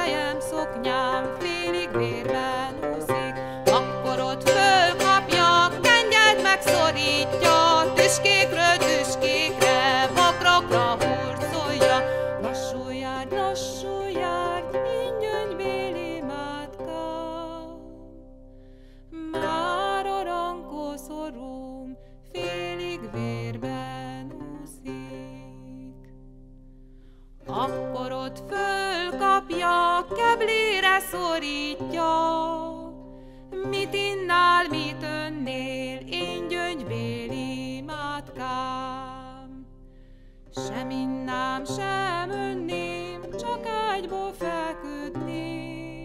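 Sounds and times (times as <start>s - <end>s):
woman singing: 0.0s - 18.2s, 19.2s - 26.1s, 27.4s - 39.7s, 40.5s - 46.0s
lute plucked melody: 0.0s - 46.0s.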